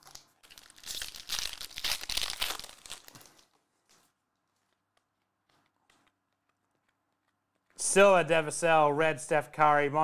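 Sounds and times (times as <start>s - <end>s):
foil wrapper crinkling as torn open: 0.0s - 3.5s.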